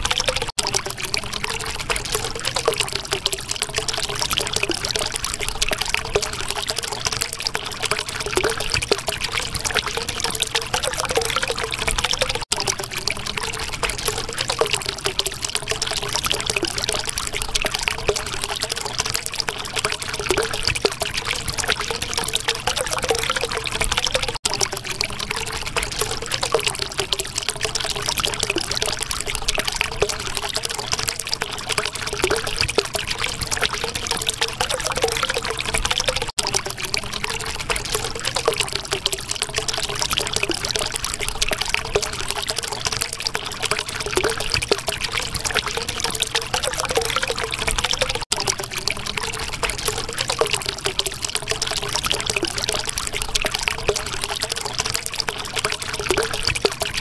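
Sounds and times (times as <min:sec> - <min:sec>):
water flowing and trickling: 0:00.0 - 0:57.0
wavering gurgle: 0:00.0 - 0:57.0.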